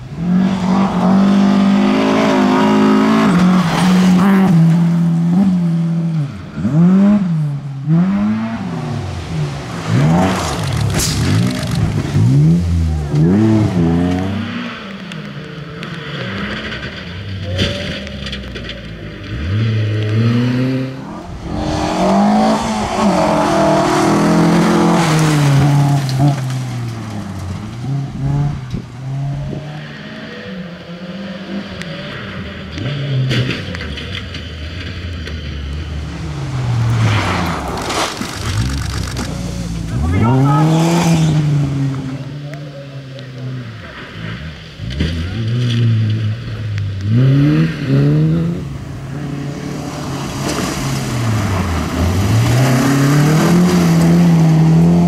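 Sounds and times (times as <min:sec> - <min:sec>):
rally car engines revving: 0:00.0 - 0:55.0
tyres sliding on gravel: 0:09.5 - 0:13.8, 0:33.6 - 0:41.3.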